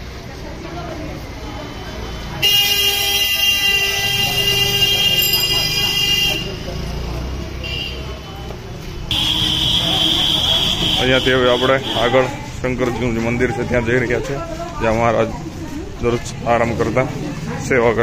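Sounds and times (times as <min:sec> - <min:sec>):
street noise: 0:00.0 - 0:18.0
vehicle horn long blast: 0:02.4 - 0:06.6, 0:09.1 - 0:12.1.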